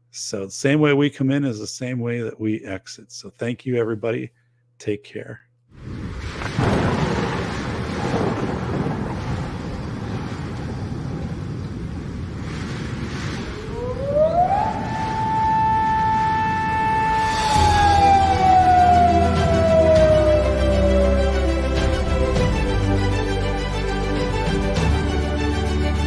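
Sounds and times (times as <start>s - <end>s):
tone gliding up: 13.6s - 23.4s
low music: 15.2s - 26.0s.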